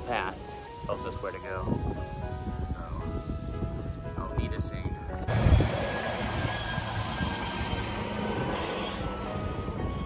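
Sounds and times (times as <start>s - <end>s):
truck driving past: 5.3s - 10.0s.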